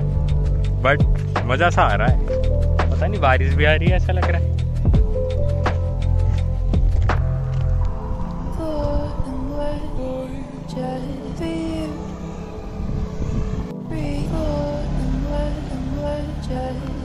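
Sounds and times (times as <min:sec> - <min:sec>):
low steady rumble: 0:00.0 - 0:17.0
melody of gliding notes: 0:00.0 - 0:17.0.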